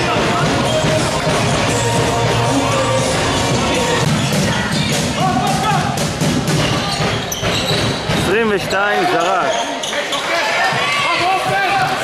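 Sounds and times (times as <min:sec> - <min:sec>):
music playing in a hall: 0:00.0 - 0:12.0.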